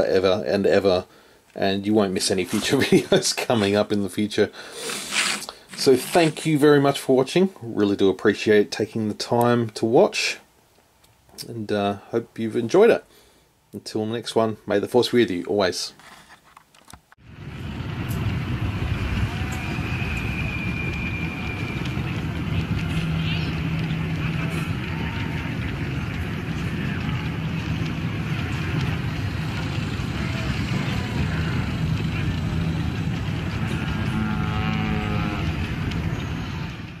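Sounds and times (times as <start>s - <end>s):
vehicle rumble: 17.2s - 37.0s
indistinct crowd chatter: 22.0s - 33.5s.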